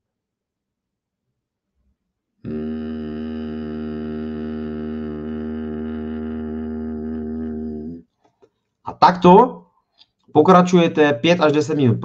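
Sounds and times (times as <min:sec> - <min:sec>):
man humming low nasal om: 0:02.4 - 0:08.1.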